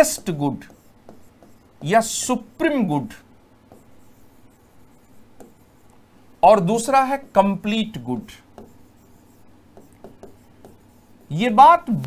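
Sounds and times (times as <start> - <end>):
pen strokes on whiteboard: 0.0 - 12.0
pen tap: 0.6 - 1.6, 5.4 - 5.6, 8.6 - 8.9, 9.7 - 10.9.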